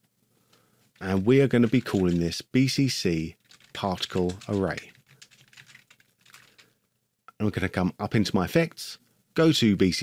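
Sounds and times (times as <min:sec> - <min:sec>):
faint keyboard typing: 0:00.4 - 0:02.7, 0:03.3 - 0:06.9.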